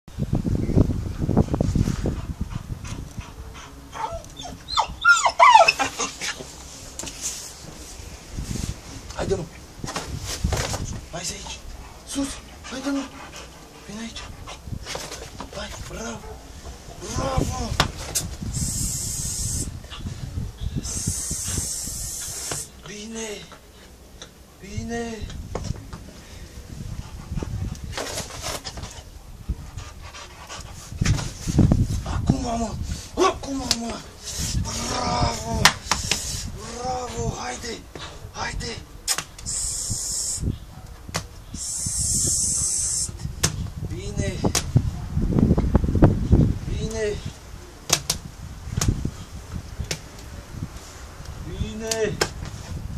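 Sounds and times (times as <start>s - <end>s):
dog panting hard: 1.2s - 3.9s, 11.9s - 14.8s, 26.9s - 27.9s, 28.5s - 32.3s
dog whining: 3.9s - 6.4s.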